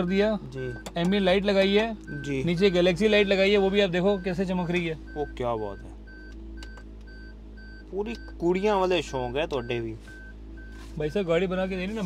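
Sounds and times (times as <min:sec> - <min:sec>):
car warning chime beeps: 0:00.0 - 0:12.0.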